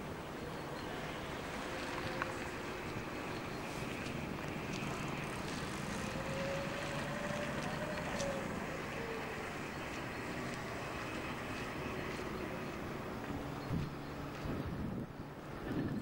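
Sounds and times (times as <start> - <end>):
distant engine hum: 0.0 - 16.0
wind on microphone: 13.6 - 16.0.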